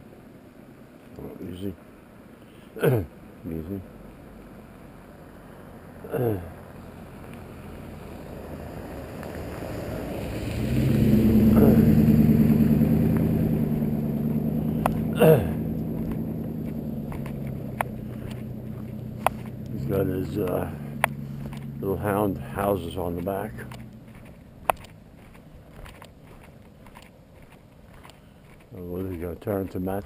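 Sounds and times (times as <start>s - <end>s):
vehicle on gravel road: 0.0s - 30.0s
sharp clicks: 23.6s - 25.0s.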